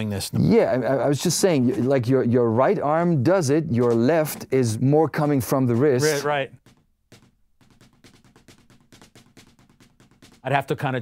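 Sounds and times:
fast snare drum strokes: 3.7 - 11.0.

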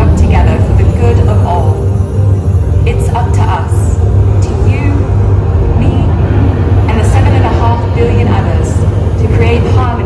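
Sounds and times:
deep steady soundtrack rumble: 0.0 - 10.0.

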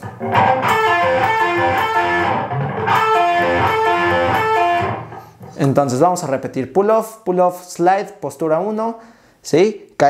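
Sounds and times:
fast electric guitar run: 0.0 - 5.1.

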